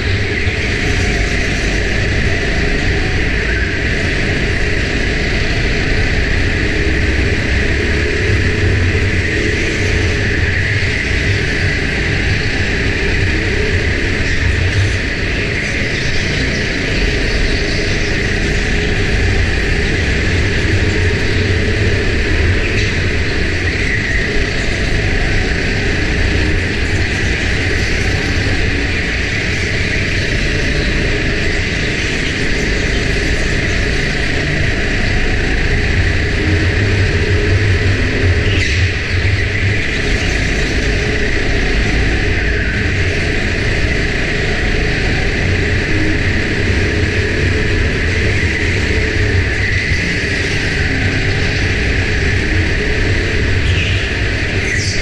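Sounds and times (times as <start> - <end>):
go-kart engine drone: 0.0 - 55.0.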